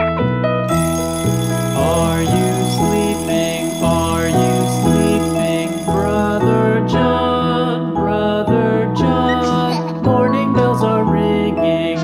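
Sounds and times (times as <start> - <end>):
alarm clock bell ringing: 0.7 - 6.7
cheerful children's music: 0.7 - 12.0.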